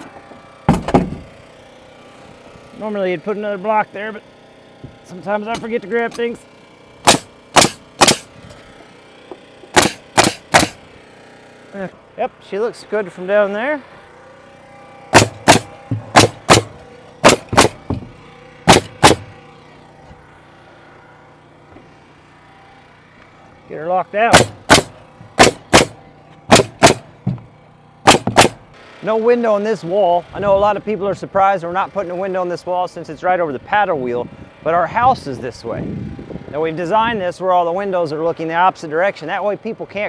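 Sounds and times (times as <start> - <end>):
nail gun shots into wood: 0.7 - 1.3, 7.0 - 8.3, 9.7 - 10.8, 15.1 - 19.3, 24.3 - 27.4, 28.0 - 28.6.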